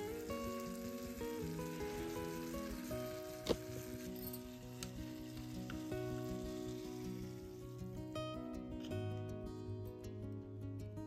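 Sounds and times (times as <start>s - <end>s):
food sizzling in a pan: 0.0s - 9.2s
background music: 0.0s - 11.0s.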